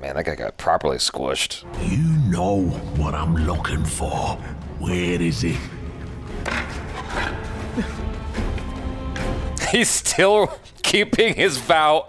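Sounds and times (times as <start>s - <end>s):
low sustained background music: 1.5s - 12.0s
low rumble: 1.7s - 8.2s.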